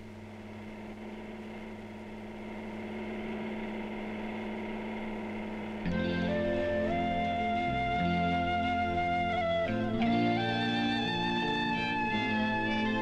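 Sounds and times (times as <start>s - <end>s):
pulsing mechanical drone: 0.0s - 13.0s.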